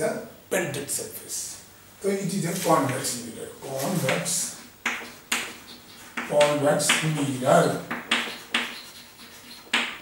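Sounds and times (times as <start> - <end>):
chalk scraping on blackboard: 3.7 - 10.0.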